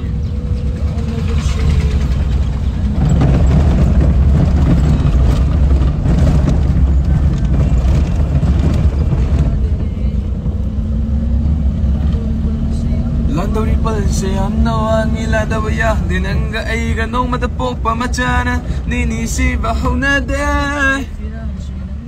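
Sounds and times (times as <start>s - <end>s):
engine and road rumble: 0.0s - 22.0s.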